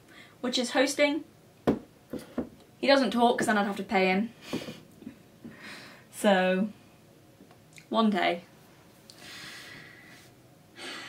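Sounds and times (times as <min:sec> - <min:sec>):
woman breathing: 0:04.4 - 0:06.1, 0:09.1 - 0:11.0.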